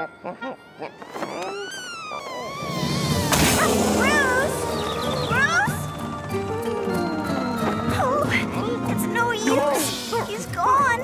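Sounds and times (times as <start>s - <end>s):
cartoon music score: 0.0s - 11.0s
sliding whistle effects: 1.0s - 8.6s.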